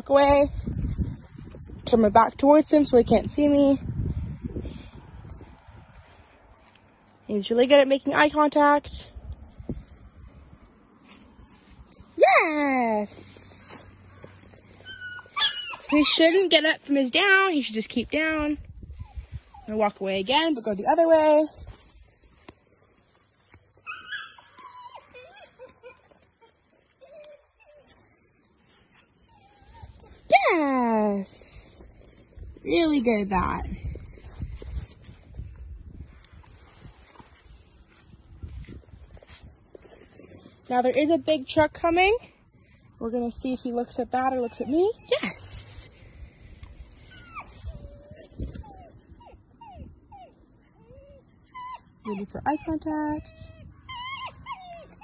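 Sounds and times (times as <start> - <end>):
faint dog whining: 23.8 - 30.4, 47.0 - 55.0.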